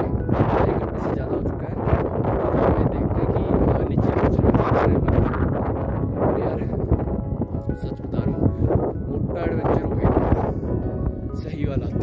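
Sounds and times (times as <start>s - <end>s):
background music: 0.0s - 12.0s
wind buffeting microphone: 0.0s - 12.0s.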